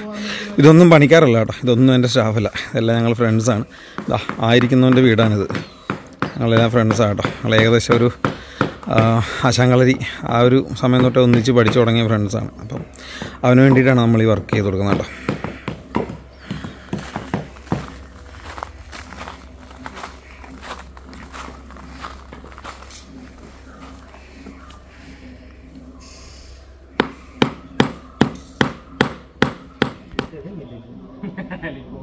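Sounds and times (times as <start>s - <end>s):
hammers tapping nails: 3.9s - 9.3s, 10.6s - 18.0s, 27.0s - 30.4s.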